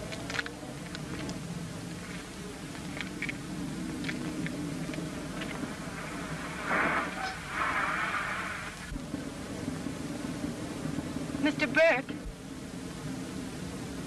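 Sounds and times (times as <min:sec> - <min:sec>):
vehicle engine droning: 0:00.0 - 0:14.0
loud rushing hiss: 0:05.7 - 0:09.0.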